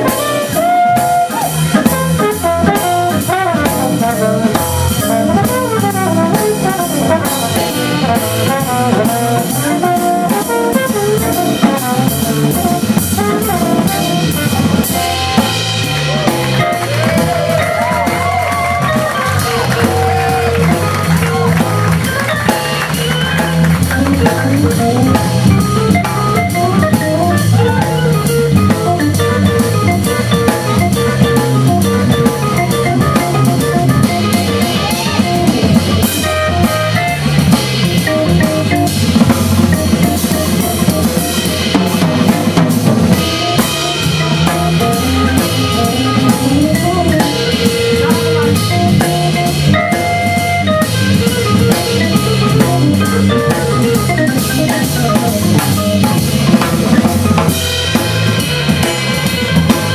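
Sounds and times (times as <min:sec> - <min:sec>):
drum kit with cymbals: 0:00.0 - 0:59.9
organ and horn lines: 0:00.0 - 0:59.9
organ bass line: 0:00.0 - 0:59.9.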